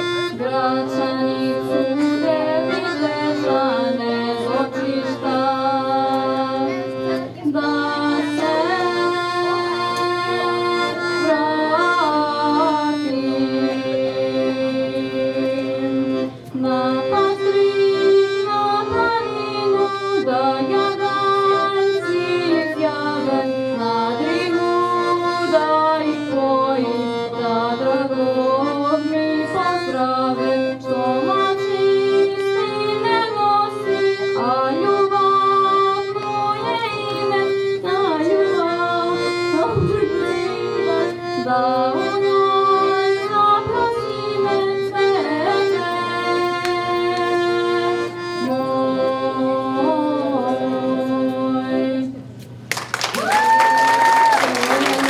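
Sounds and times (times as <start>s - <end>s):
person singing: 0.0s - 6.9s
piano accordion chords: 0.0s - 52.4s.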